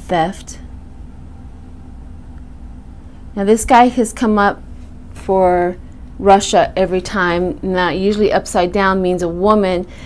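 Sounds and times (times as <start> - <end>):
low room hum and rumble: 0.0 - 10.0.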